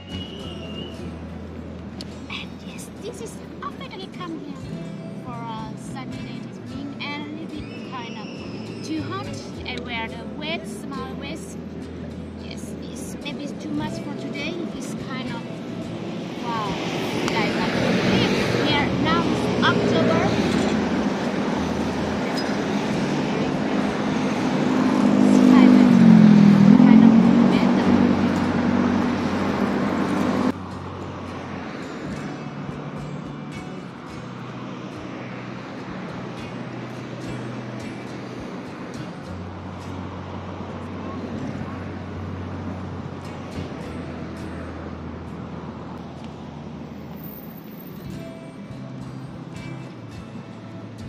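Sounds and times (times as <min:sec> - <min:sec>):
background music: 0:00.0 - 0:51.0
motor vehicle passing: 0:00.0 - 0:51.0.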